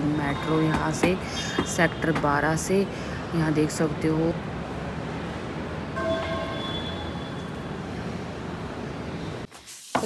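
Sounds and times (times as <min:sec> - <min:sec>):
metro train rumbling: 0:03.8 - 0:09.4
high tones: 0:06.0 - 0:07.8.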